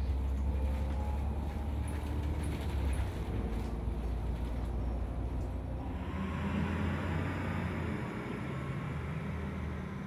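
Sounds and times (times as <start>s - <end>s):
bus engine rumble: 0.0s - 10.0s
road noise: 0.0s - 10.0s.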